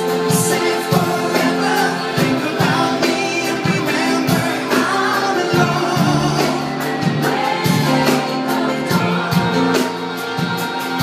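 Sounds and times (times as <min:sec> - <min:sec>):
drums: 0:00.0 - 0:11.0
electric guitars: 0:00.0 - 0:11.0
people singing: 0:00.0 - 0:11.0.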